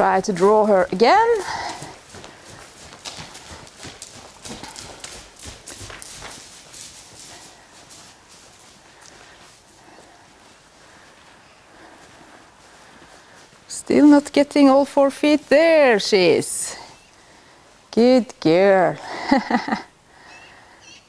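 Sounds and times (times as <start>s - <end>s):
horse hoof steps on straw: 0.0s - 15.5s.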